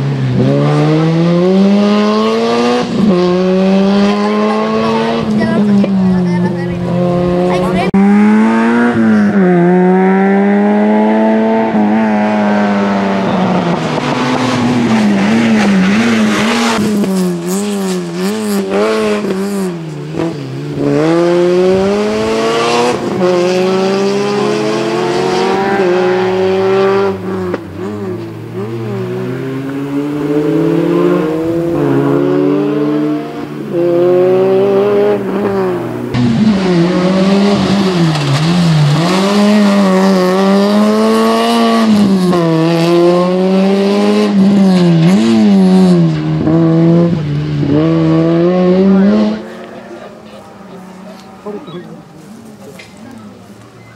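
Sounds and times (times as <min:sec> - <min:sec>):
car engine revving hard: 0:00.0 - 0:51.6.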